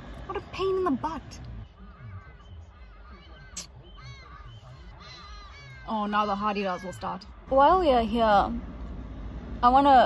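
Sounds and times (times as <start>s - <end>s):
ibis calling: 1.6s - 7.3s.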